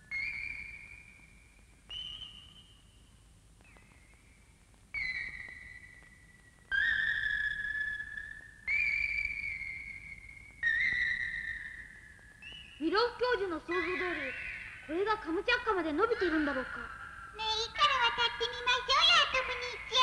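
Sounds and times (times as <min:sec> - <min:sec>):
high whistle-like electronic tones: 0:05.0 - 0:15.6.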